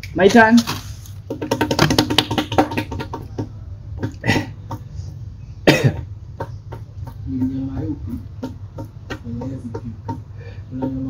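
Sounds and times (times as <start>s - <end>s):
man coughing: 5.6s - 6.1s.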